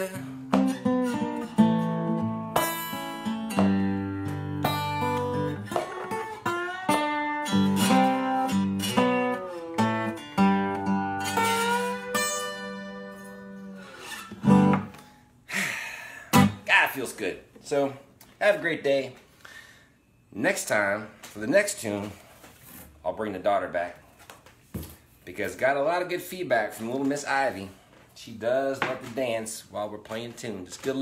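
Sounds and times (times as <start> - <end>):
slide acoustic guitar: 0.0 - 15.2, 16.3 - 16.9.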